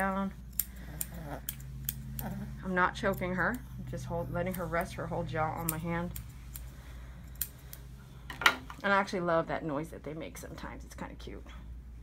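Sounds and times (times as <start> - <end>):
scissors snipping: 0.0 - 3.6.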